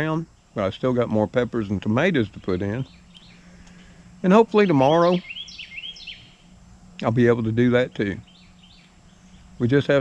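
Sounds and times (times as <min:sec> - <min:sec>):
faint low hum: 0:00.0 - 0:10.0
songbird calling: 0:00.0 - 0:10.0.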